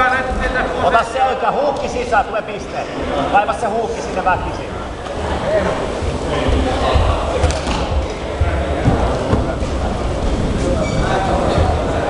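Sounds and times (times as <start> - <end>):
indistinct voices in a hall: 0.0 - 12.0
low thuds and rumbling: 5.8 - 10.8.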